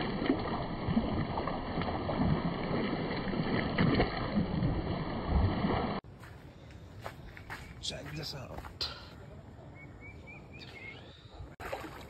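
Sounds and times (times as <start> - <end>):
footsteps splashing through water: 0.0 - 6.3, 11.6 - 12.0.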